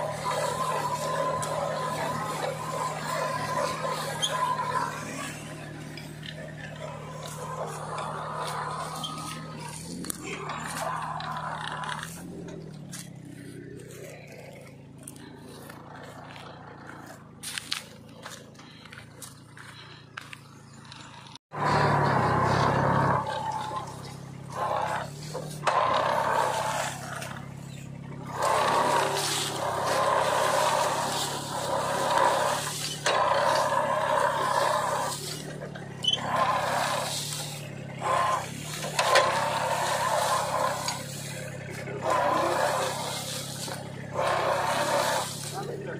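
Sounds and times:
digging implement working soil: 0.0 - 45.9
tractor engine running: 0.0 - 45.9.

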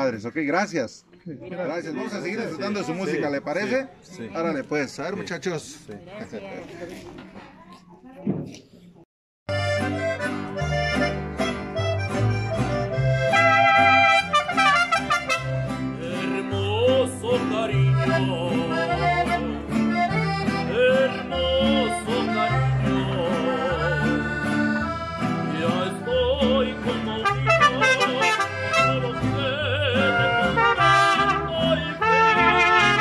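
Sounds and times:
accordion: 9.5 - 33.0
guitars: 9.5 - 33.0
trumpet: 13.2 - 15.7, 27.2 - 29.1, 30.0 - 33.0.

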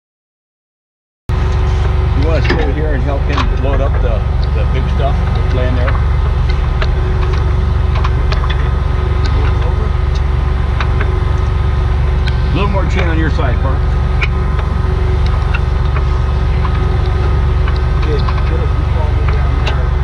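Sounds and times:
diesel truck idling: 1.3 - 20.0
muffled voices: 1.3 - 20.0.

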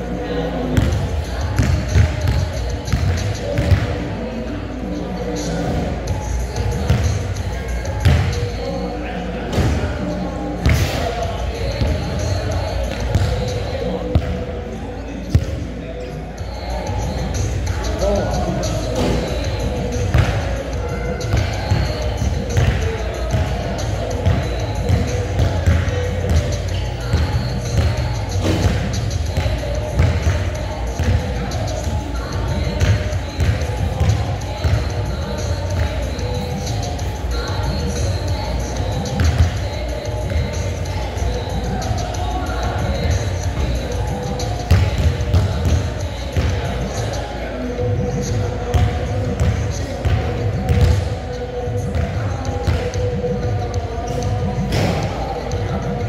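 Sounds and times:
background voices: 0.0 - 56.0
music: 0.0 - 56.0
basketball bouncing: 48.7 - 51.1.

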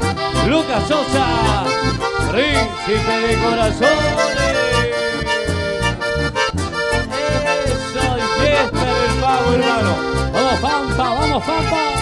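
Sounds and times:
accordion: 0.0 - 12.0
bass and percussion beat: 0.0 - 12.0.

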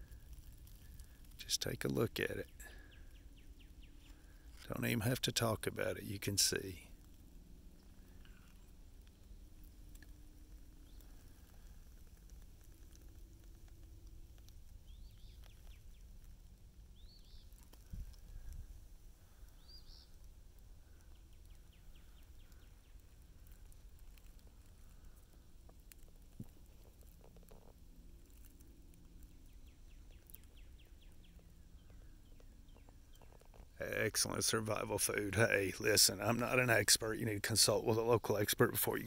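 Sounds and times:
low steady rumble: 0.0 - 39.0.

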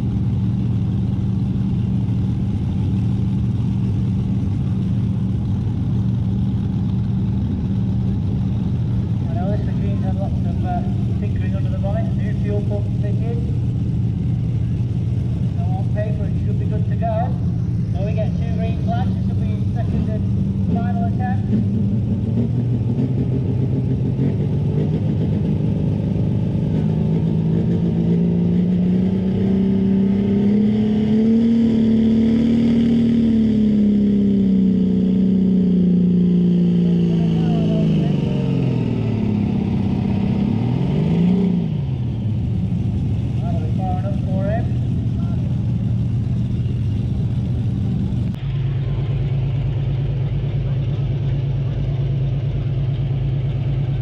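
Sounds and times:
tractor diesel engine under load: 0.0 - 54.0.

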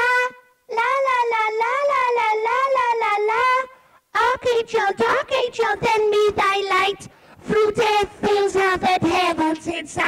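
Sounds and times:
wordless wailing voice: 0.0 - 3.7.

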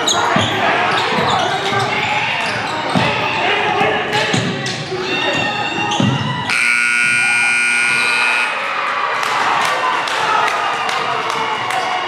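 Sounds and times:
crowd cheering and shouting: 0.0 - 12.0
scoreboard buzzer blast: 6.5 - 8.6.

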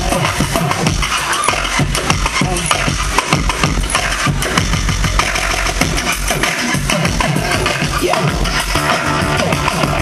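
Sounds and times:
loud electronic club music: 0.0 - 10.0.

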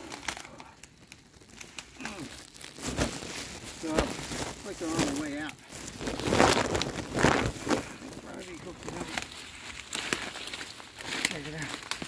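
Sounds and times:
twig snapping: 0.0 - 2.8, 6.6 - 12.0
twigs and brush rustling: 0.0 - 12.0.

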